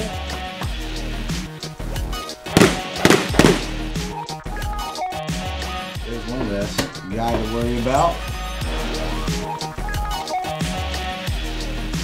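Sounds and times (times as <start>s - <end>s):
background music: 0.0s - 12.0s
gunshots: 2.5s - 3.8s.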